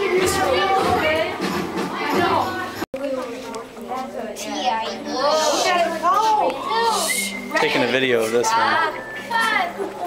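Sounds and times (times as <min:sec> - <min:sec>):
children exclaiming and calling out: 0:00.0 - 0:10.0.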